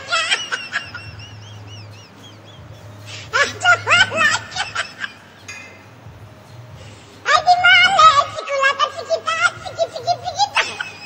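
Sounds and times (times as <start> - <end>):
high-pitched laugh: 0.0 - 5.4, 7.6 - 11.0
steady low hum: 0.0 - 11.0.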